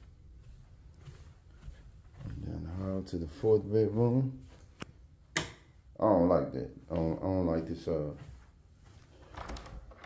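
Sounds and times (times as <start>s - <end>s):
man speaking: 2.2s - 4.5s, 6.0s - 8.4s.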